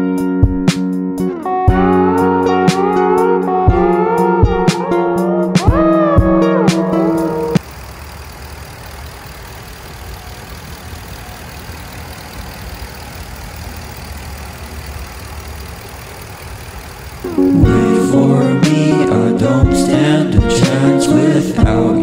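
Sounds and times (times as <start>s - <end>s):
background music: 0.0s - 7.6s, 17.3s - 22.0s
engine idling: 6.7s - 19.6s.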